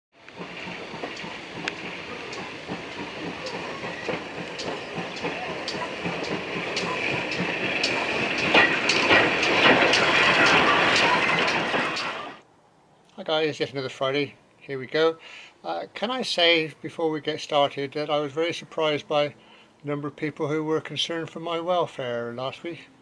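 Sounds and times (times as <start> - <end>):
steam locomotive hissing: 0.2 - 12.4
train wheels clicking: 0.2 - 12.4.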